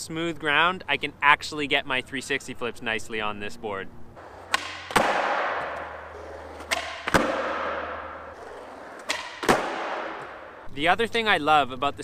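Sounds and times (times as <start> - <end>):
skateboard tail pop: 4.2 - 10.6
skateboard landing clack: 4.2 - 10.7
skateboard wheels rolling: 4.2 - 10.7.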